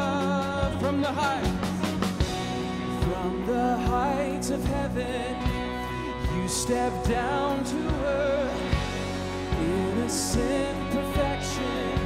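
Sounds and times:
bass guitar: 0.0 - 12.0
person singing: 0.0 - 12.0.

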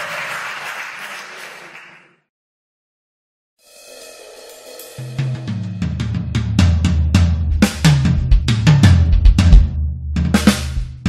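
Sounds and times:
drum kit with cymbals: 3.6 - 11.0
low bass line: 6.0 - 11.0.

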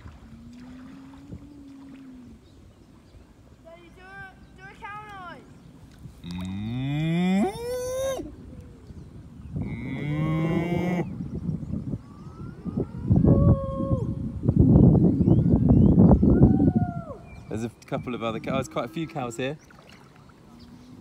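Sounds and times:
cattle mooing: 6.2 - 7.6.

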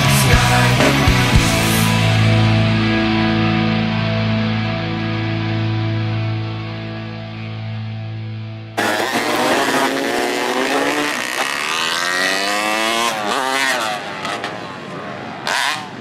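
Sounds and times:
music: 0.0 - 8.8
dirt bike engines revving: 8.7 - 16.0.

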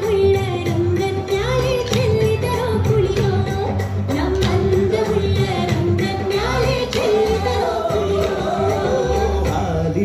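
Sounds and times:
instrumental accompaniment: 0.0 - 10.0.

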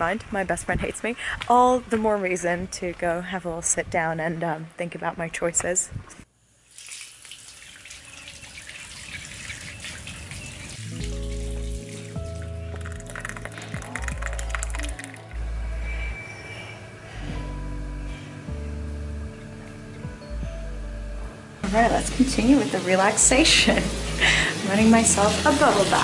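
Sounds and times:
background music with deep bass: 10.8 - 26.0.

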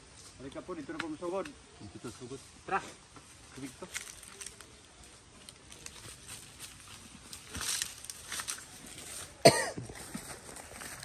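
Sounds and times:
scrapes and rustles: 2.0 - 11.0
loud cough: 9.4 - 9.8.

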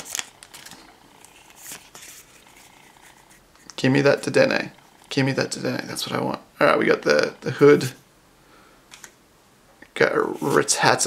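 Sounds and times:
foil wrapper rustle: 0.0 - 2.5.

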